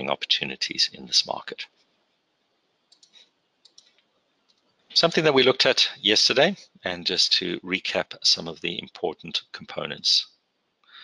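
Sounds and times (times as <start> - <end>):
faint clicks: 2.9 - 4.8.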